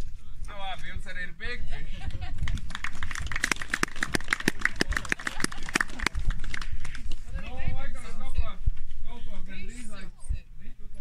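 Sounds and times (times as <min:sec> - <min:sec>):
people clapping: 0:02.1 - 0:07.3.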